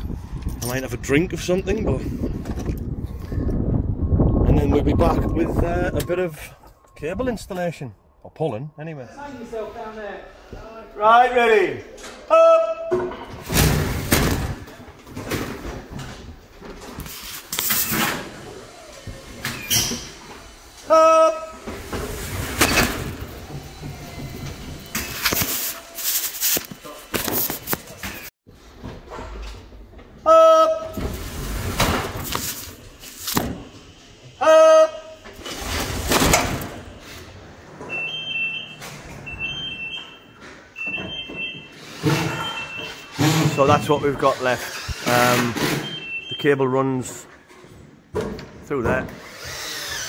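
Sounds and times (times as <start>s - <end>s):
short electronic beeps: 37.9s - 43.8s, 45.8s - 46.6s.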